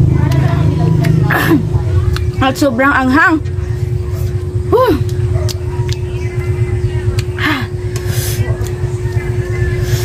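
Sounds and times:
low rumble with hum: 0.0s - 10.0s.

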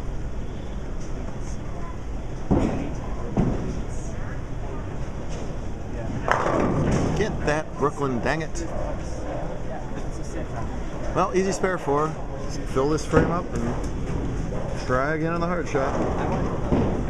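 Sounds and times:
rumble of balls and pinsetters: 0.0s - 17.0s
bowling ball thuds: 6.2s - 7.4s, 15.9s - 17.0s
bowling pins clattering: 15.7s - 17.0s.

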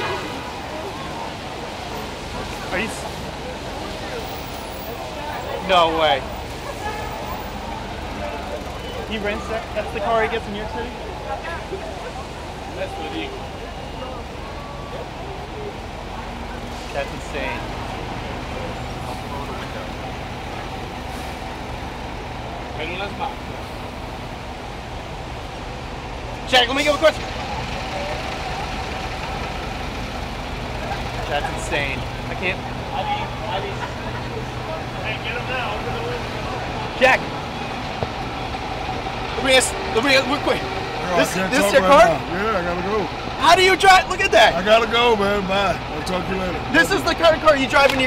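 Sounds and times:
faint voices: 0.0s - 48.0s
vehicle engines in slow traffic: 0.0s - 48.0s.

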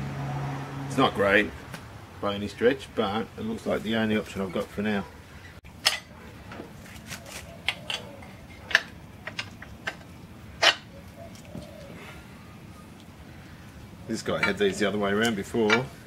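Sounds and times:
steel parts clinking together: 5.8s - 6.2s, 7.7s - 10.9s, 14.3s - 15.9s.

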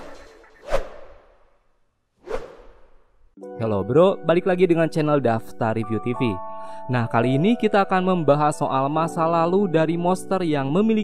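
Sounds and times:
whoosh sound effect: 0.0s - 1.5s.

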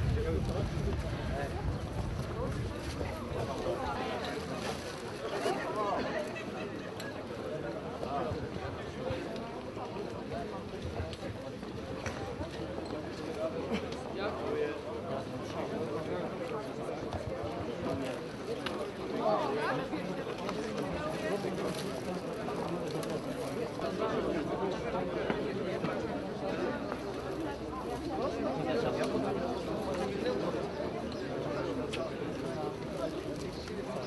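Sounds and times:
crowd babble: 0.0s - 34.0s.

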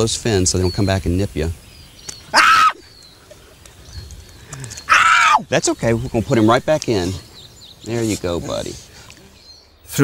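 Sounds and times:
person shrieking: 2.3s - 2.8s, 4.9s - 5.4s.

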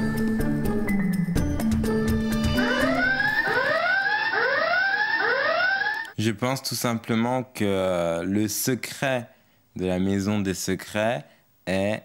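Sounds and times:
background music: 0.0s - 6.1s
electronic whooping alarm: 2.2s - 6.1s.

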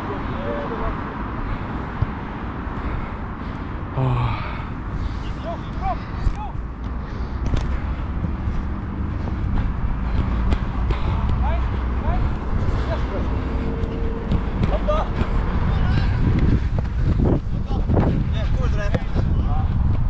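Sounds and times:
wind rumbling on microphone: 0.0s - 20.0s
running footfalls: 6.2s - 12.8s.

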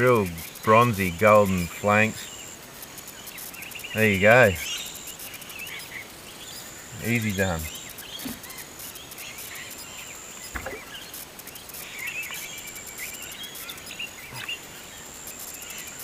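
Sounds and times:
birds chirping: 0.0s - 16.0s
high insect drone: 0.0s - 16.0s.

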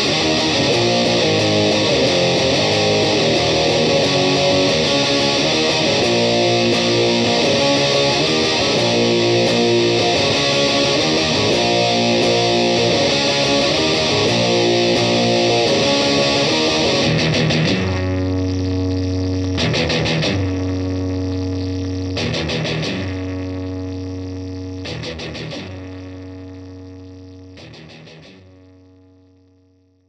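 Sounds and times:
distorted electric guitar riff: 0.0s - 29.8s.

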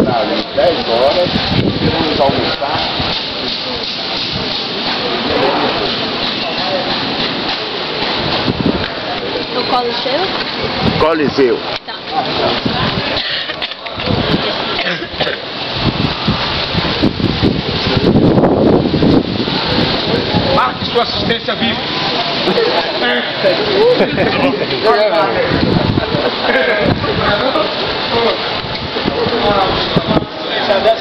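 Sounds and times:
wind buffeting microphone: 0.0s - 22.7s, 23.6s - 31.0s
people talking indistinctly: 0.0s - 31.0s.

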